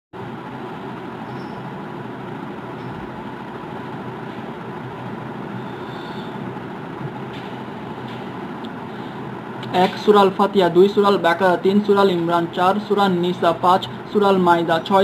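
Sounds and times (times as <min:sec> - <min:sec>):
steady hiss and rumble: 0:00.2 - 0:15.0.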